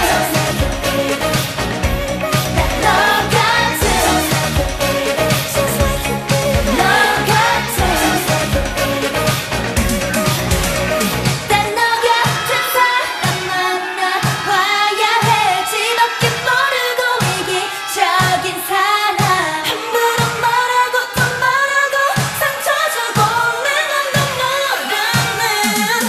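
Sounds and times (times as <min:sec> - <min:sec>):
female group singing dance-pop: 0:00.0 - 0:10.4, 0:11.0 - 0:26.0
kick-drum beat: 0:00.0 - 0:11.6, 0:15.2 - 0:16.6, 0:17.2 - 0:17.6, 0:18.2 - 0:18.6, 0:19.2 - 0:19.6.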